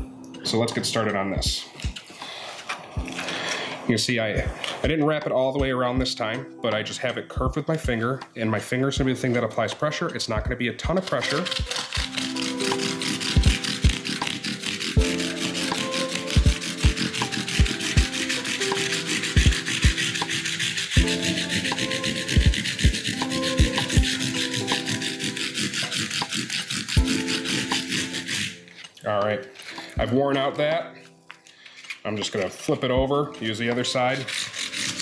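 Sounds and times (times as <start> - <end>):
background music with a beat: 0.0 - 8.4, 10.4 - 28.6
sandpaper rubbing on wood: 10.8 - 28.8, 33.4 - 35.0.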